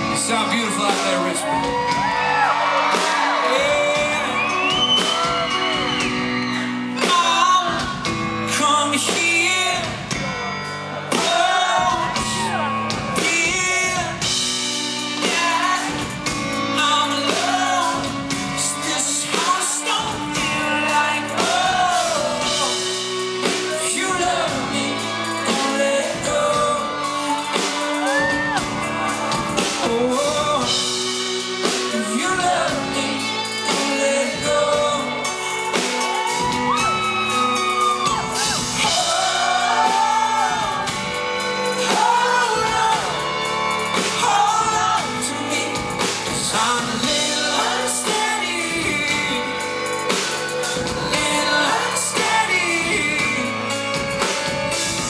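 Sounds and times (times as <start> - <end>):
man singing into a microphone: 0.0 - 1.9, 3.1 - 5.6, 7.0 - 10.4, 11.0 - 14.4, 15.2 - 28.6, 29.6 - 35.8, 38.8 - 43.4, 44.2 - 54.2
pop-rock band playing: 0.0 - 55.0
crowd shouting and whooping: 0.3 - 7.9, 10.2 - 14.1, 20.7 - 48.5.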